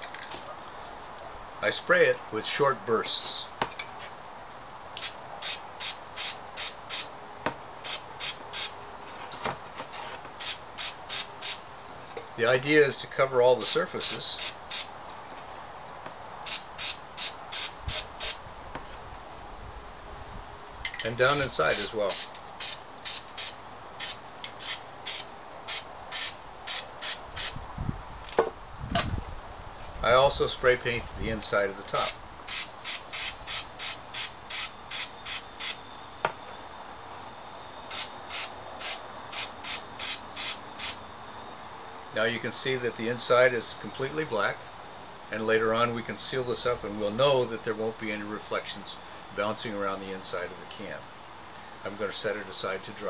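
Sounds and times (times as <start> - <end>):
spray paint can hissing: 5.0 - 7.1, 7.8 - 8.7, 10.4 - 11.6, 14.0 - 14.9, 16.4 - 18.4, 21.7 - 27.6, 32.0 - 35.8, 37.9 - 41.0.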